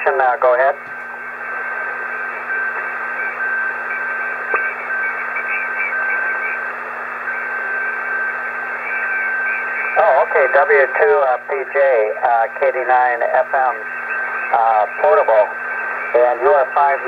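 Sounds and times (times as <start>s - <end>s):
radio band noise hiss: 0.0s - 17.0s
weak radio station: 0.0s - 17.0s.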